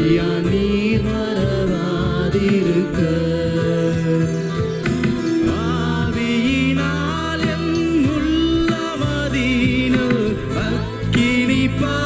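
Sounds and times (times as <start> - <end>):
band backing: 0.0 - 12.0
man singing worship song: 0.0 - 12.0
sustained keyboard chords: 0.0 - 12.0.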